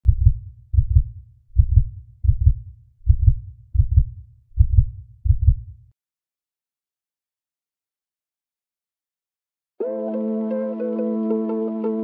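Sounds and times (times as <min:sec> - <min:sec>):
heartbeat thumps: 0:00.0 - 0:05.8.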